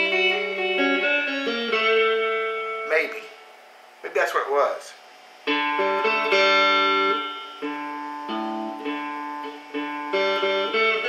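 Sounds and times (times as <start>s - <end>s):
clean electric guitar notes: 0.0s - 3.4s, 5.5s - 11.0s.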